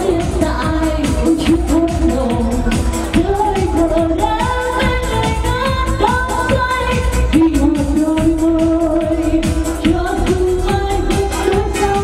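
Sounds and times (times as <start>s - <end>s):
amplified backing music with beat: 0.0s - 12.0s
woman singing into a microphone: 0.0s - 12.0s.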